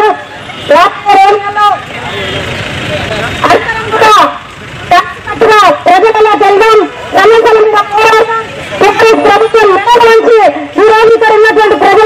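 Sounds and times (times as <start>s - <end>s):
woman speaking over loudspeaker: 0.0s - 1.9s, 3.4s - 12.0s
street noise: 0.0s - 12.0s.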